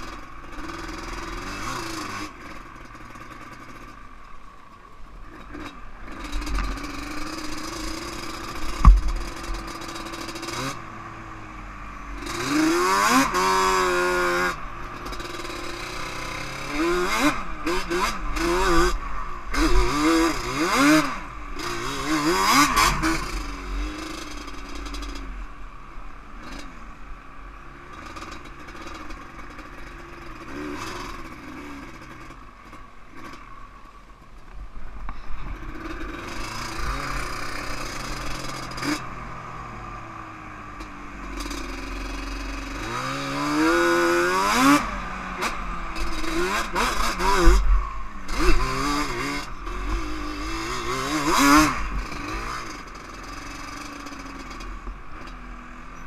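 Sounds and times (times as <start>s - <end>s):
quad engine revving: 0.0s - 4.1s, 5.3s - 25.4s, 27.8s - 33.4s, 35.4s - 56.0s.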